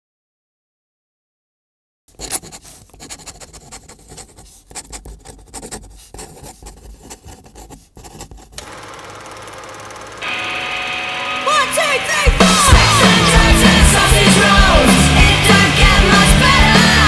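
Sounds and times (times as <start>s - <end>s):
pen scratching on paper: 2.1s - 8.6s.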